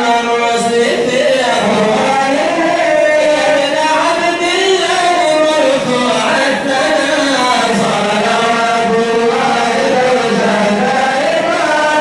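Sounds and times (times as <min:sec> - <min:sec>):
man chanting into microphone: 0:00.0 - 0:12.0.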